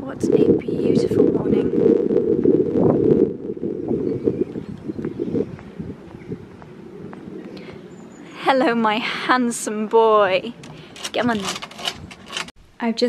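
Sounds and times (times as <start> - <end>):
wind rumbling on microphone: 0.0 - 12.8
footsteps on stone paving: 5.0 - 7.6.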